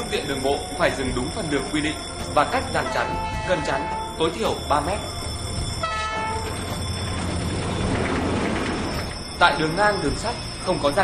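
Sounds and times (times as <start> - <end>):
train rumble: 0.0 - 11.0
train horn blast: 2.8 - 4.2, 5.8 - 6.5.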